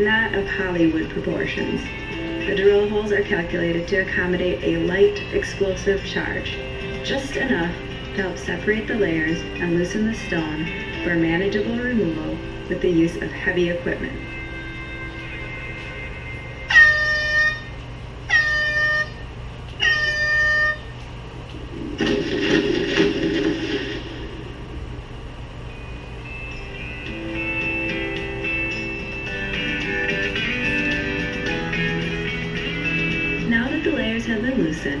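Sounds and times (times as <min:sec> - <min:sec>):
warning horn blasts: 0:16.6 - 0:21.0
guitar music: 0:25.8 - 0:33.5.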